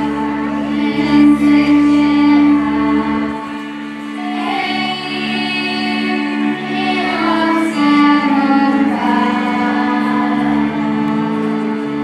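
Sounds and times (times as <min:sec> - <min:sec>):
children singing: 0:00.0 - 0:12.0
fiddles and double bass: 0:00.0 - 0:12.0.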